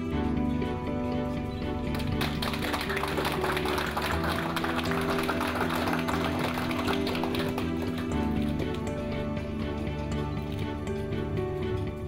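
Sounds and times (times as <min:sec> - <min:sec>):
background music with held notes: 0:00.0 - 0:12.0
small group clapping: 0:01.8 - 0:09.1.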